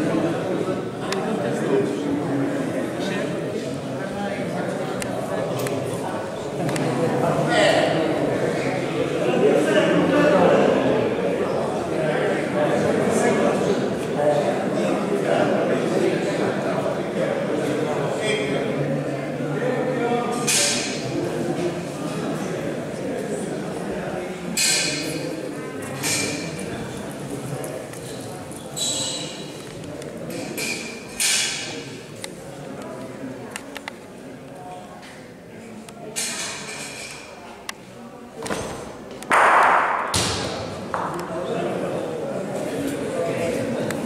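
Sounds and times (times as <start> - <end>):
men talking in echoing hall: 0.0 - 44.0.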